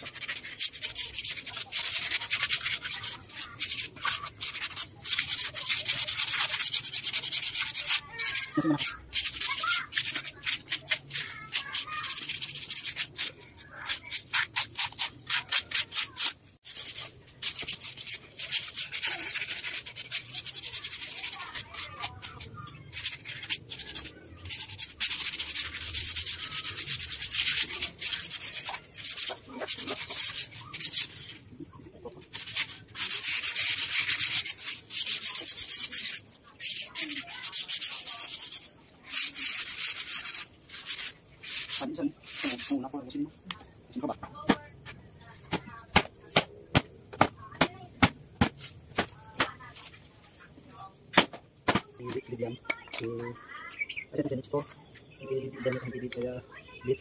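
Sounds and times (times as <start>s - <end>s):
hand sanding wood: 0.0s - 31.4s, 32.2s - 43.2s.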